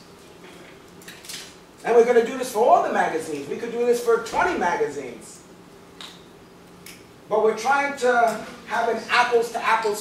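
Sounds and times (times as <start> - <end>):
man speaking: 1.8 - 5.4, 7.3 - 10.0.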